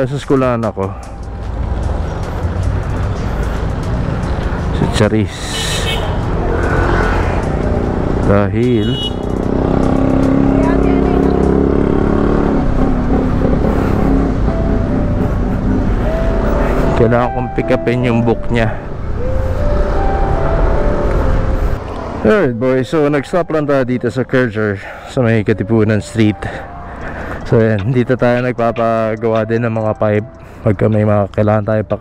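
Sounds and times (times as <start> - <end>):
street traffic: 0.0 - 32.0
car passing close by: 5.6 - 8.3, 9.2 - 17.8.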